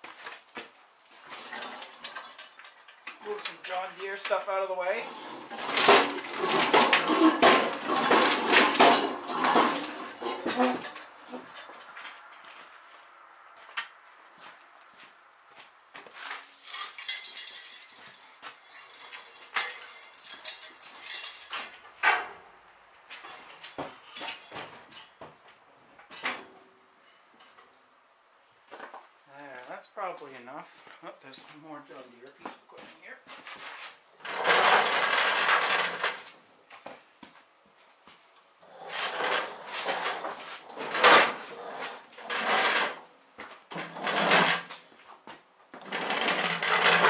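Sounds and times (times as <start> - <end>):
metal tools clanking and rattling: 1.2 - 12.3, 16.6 - 22.4, 23.3 - 25.2, 34.2 - 36.3, 38.9 - 43.1, 43.7 - 44.9, 45.8 - 47.0.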